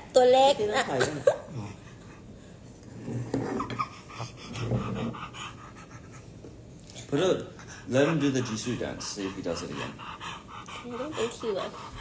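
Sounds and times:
dog breathing: 0:01.5 - 0:12.0.

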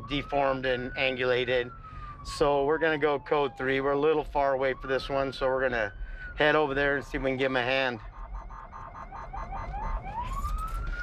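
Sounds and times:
siren chirping and wailing: 0:00.0 - 0:11.0.

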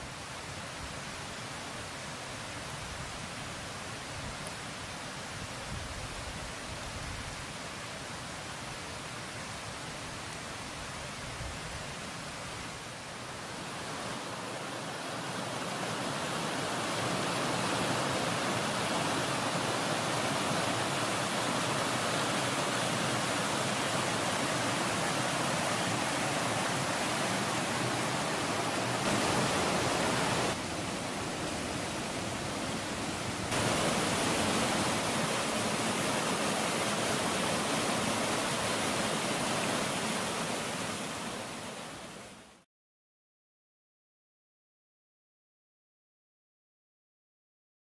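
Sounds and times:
water rushing over rocks: 0:13.3 - 0:42.4.

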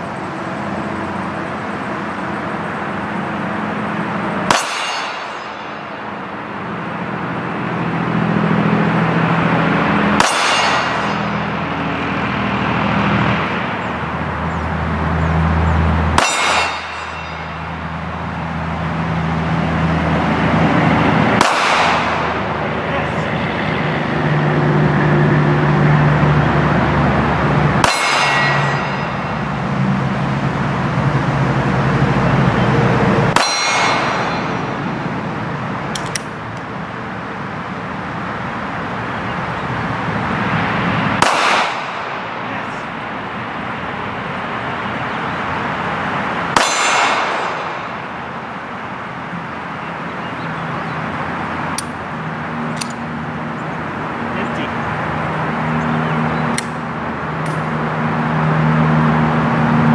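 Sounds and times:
bullet clanging on steel target: 0:04.5 - 0:06.0, 0:10.2 - 0:11.6, 0:16.2 - 0:17.8, 0:27.8 - 0:29.4, 0:33.4 - 0:34.7
pistol shots: 0:10.2 - 0:11.2, 0:21.4 - 0:22.4, 0:41.2 - 0:42.1, 0:46.5 - 0:47.8.

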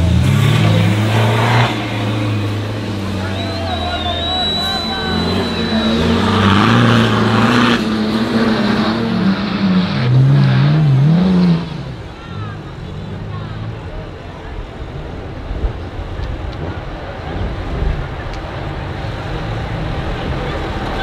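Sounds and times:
off-road engine revving hard: 0:00.0 - 0:14.1.

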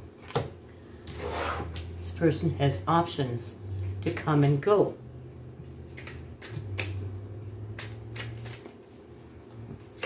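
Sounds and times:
faint low hum: 0:00.0 - 0:10.0
cards shuffled and flicked: 0:05.8 - 0:09.0.

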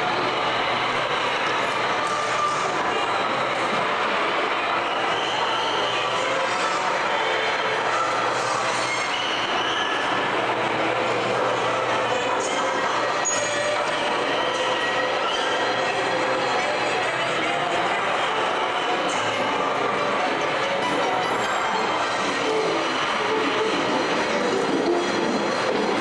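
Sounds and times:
ride train running on track: 0:00.0 - 0:26.0.

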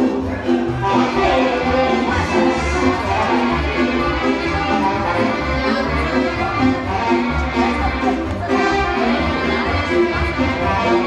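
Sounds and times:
band playing music: 0:00.0 - 0:11.0.

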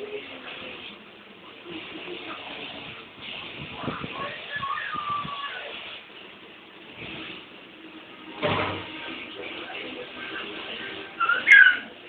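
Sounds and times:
baby squealing: 0:11.2 - 0:11.9.

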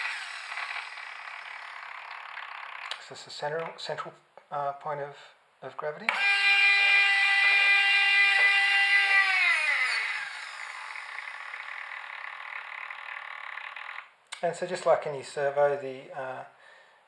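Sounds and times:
servo motor whining: 0:00.0 - 0:02.9, 0:06.1 - 0:14.1.

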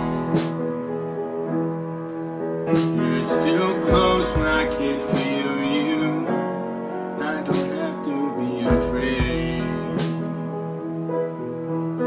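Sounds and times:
melody over held chords: 0:00.0 - 0:12.0.

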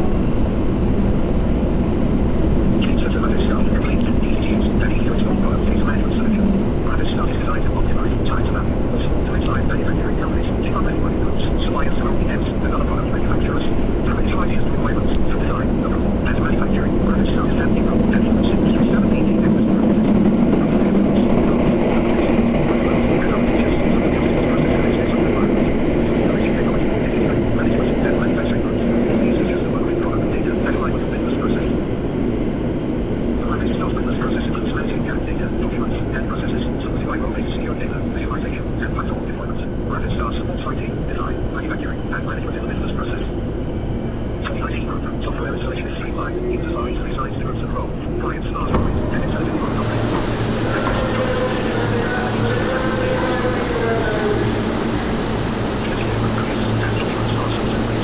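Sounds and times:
subway train rumbling in tunnel: 0:00.0 - 0:58.0.

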